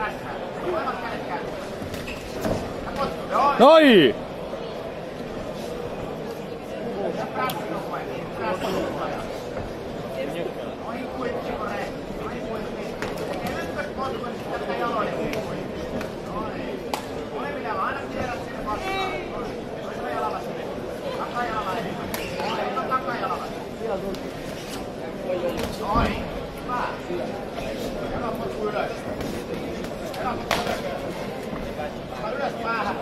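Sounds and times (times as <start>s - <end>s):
people shouting: 3.6s - 4.1s.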